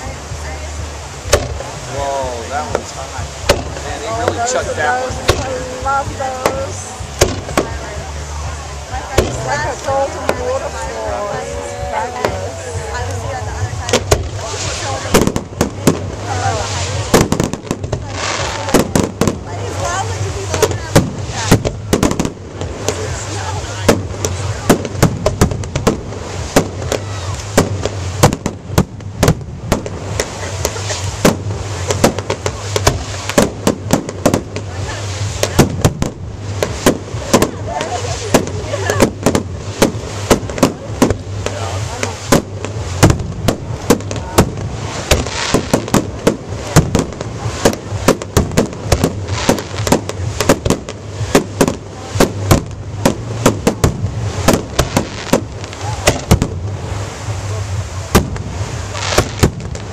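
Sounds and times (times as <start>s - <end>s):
fireworks bursting: 0.0s - 59.9s.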